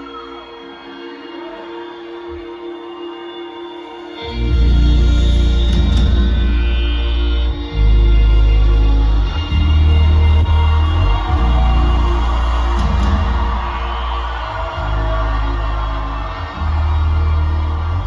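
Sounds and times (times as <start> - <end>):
loud live concert music: 0.0 - 18.0
deep bass notes: 4.3 - 18.0.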